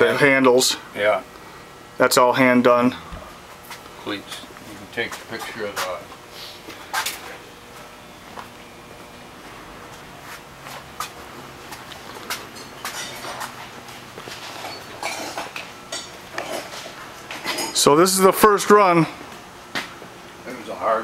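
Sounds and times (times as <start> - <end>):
faint steady hum: 0.0 - 21.0
footsteps on shop floor: 3.1 - 17.6.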